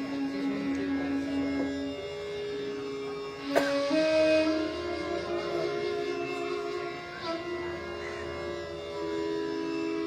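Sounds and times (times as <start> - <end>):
bamboo flute long held notes: 0.0 - 10.0
steady drone: 0.0 - 10.0.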